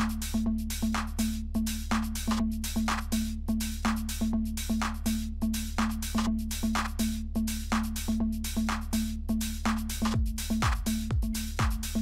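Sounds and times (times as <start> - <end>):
tech house dance music: 0.0 - 12.0.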